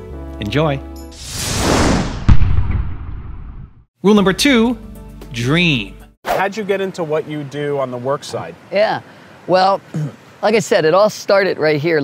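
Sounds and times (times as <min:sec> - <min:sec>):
rising whoosh: 0:01.2 - 0:03.8
heavy low boom: 0:01.6 - 0:03.8.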